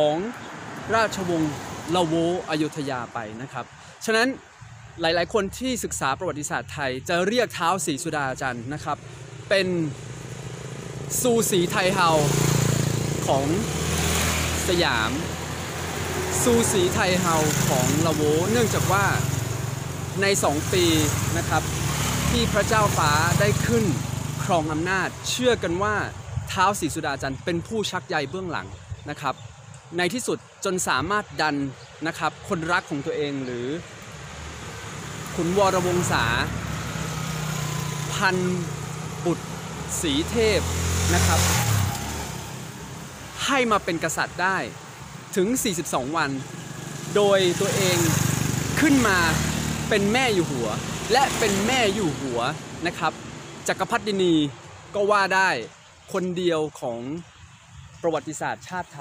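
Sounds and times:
man speaking: 0:00.0 - 0:04.4, 0:05.0 - 0:10.0, 0:11.2 - 0:12.4, 0:13.2 - 0:13.7, 0:14.6 - 0:15.3, 0:16.3 - 0:19.4, 0:20.2 - 0:21.7, 0:22.3 - 0:29.4, 0:30.0 - 0:33.9, 0:35.3 - 0:36.6, 0:38.1 - 0:41.8, 0:43.4 - 0:44.8, 0:45.4 - 0:46.5, 0:47.1 - 0:57.2, 0:58.0 - 0:59.0
man talking: 0:00.0 - 0:04.4, 0:05.0 - 0:10.0, 0:11.1 - 0:12.5, 0:13.2 - 0:13.7, 0:14.6 - 0:15.4, 0:16.2 - 0:19.4, 0:20.1 - 0:21.7, 0:22.3 - 0:33.9, 0:35.3 - 0:36.6, 0:38.1 - 0:41.8, 0:43.3 - 0:44.8, 0:45.4 - 0:46.5, 0:47.1 - 0:57.2, 0:58.0 - 0:59.0
engine humming: 0:33.8 - 0:44.3.

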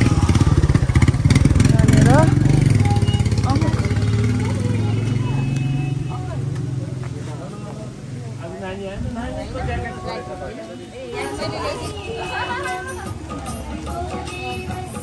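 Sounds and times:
motorcycle engine running: 0:00.0 - 0:07.8
people talking: 0:00.0 - 0:15.0.

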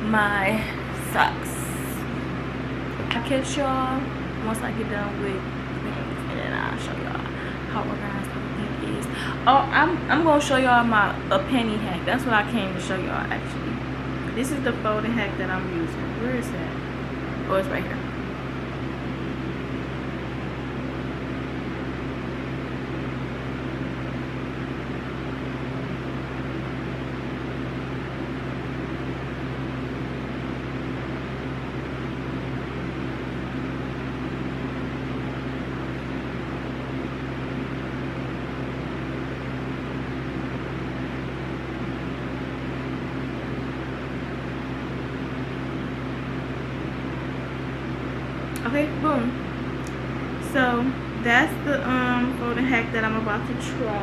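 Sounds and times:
fan humming: 0:00.0 - 0:54.0.

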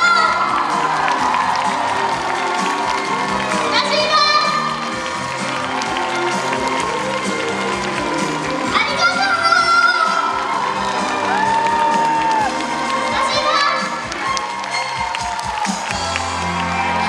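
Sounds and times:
audience cheering: 0:00.0 - 0:17.0
live pop music: 0:00.0 - 0:17.0.

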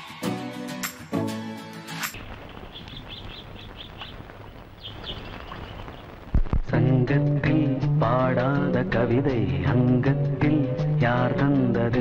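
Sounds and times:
small birds chirping: 0:02.2 - 0:06.3.

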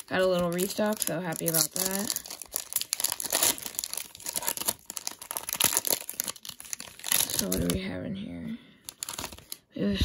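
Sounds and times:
foil wrapper crinkling and tearing: 0:00.0 - 0:07.8, 0:08.8 - 0:09.6.

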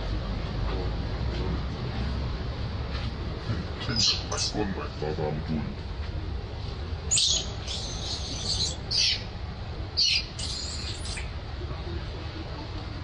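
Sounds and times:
infant monkey squealing: 0:04.0 - 0:04.6, 0:07.1 - 0:09.2, 0:10.0 - 0:11.3.

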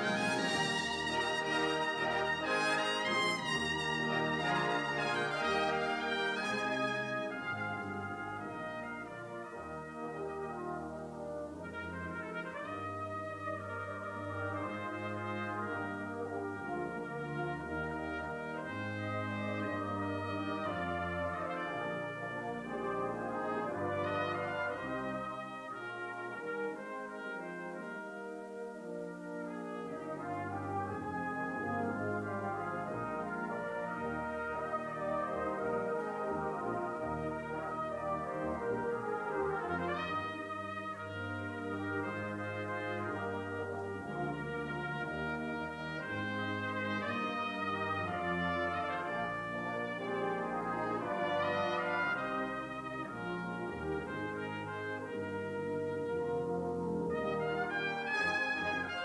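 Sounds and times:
brass band music: 0:00.0 - 0:59.0.

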